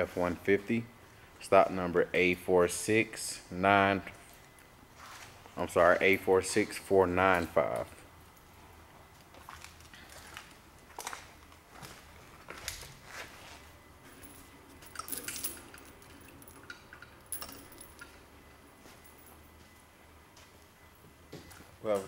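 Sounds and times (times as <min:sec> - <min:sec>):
handling clicks and rustles: 0:04.1 - 0:22.0
bright clinks: 0:14.2 - 0:19.8.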